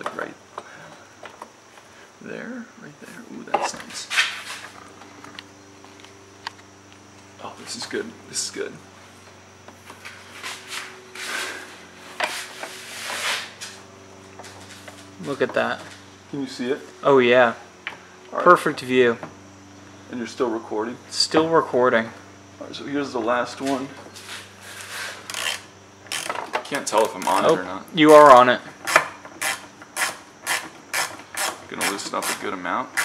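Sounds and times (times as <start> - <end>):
faint steady hum: 0.0 - 33.0
rubbing and scraping handling noise: 9.8 - 13.8, 23.7 - 26.3
metal socket scraping engine parts: 24.8 - 27.6.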